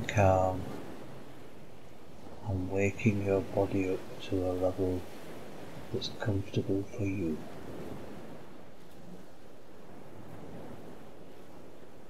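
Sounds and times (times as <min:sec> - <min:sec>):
surf washing over rocks: 0:00.0 - 0:12.0.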